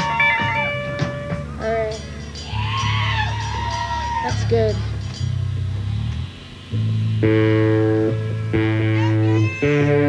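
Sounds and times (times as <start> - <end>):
live rock band playing: 0.0 - 10.0
steady bass: 0.0 - 10.0.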